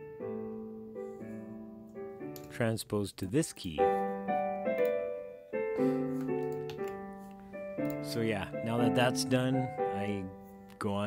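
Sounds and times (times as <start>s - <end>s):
piano playing slow chords: 0.0s - 2.6s, 3.7s - 11.0s.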